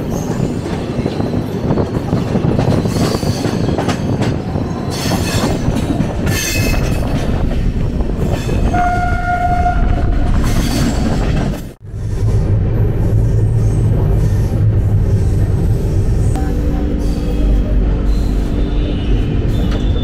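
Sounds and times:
train rumbling and clattering: 0.0s - 20.0s
train horn: 8.7s - 10.0s.

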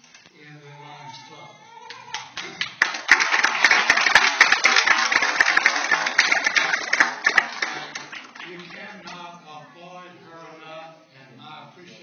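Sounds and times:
audience applauding: 2.1s - 9.2s.

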